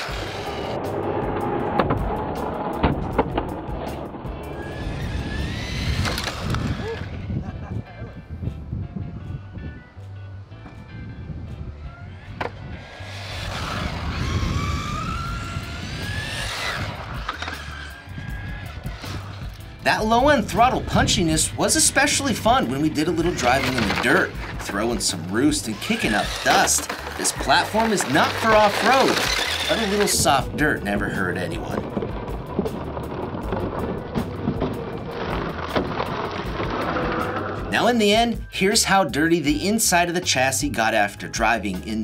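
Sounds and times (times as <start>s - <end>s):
tyre noise on asphalt: 0.0s - 7.4s, 12.1s - 37.9s
electric motor whining: 0.0s - 7.6s, 11.6s - 37.8s
background music with bass line: 0.0s - 42.0s.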